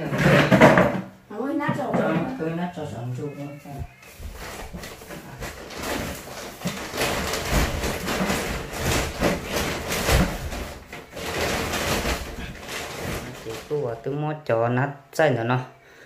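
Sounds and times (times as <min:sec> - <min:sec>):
plastic bag rustling and scraping: 0:03.5 - 0:14.0.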